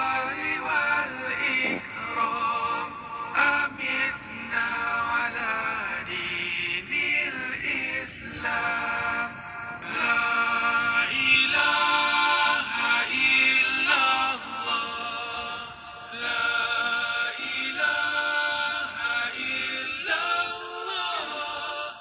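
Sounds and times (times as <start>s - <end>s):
man singing devotional chant: 0.0s - 22.0s.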